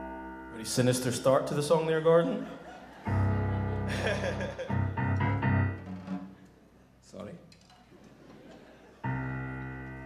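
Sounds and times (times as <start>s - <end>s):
low piano chords: 0.0s - 6.6s, 9.0s - 10.0s
person laughing: 2.2s - 5.0s.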